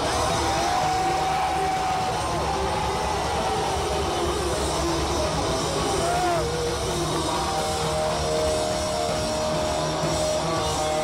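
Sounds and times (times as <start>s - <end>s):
electric guitar long gliding note: 0.0s - 11.0s
live rock band: 0.0s - 11.0s.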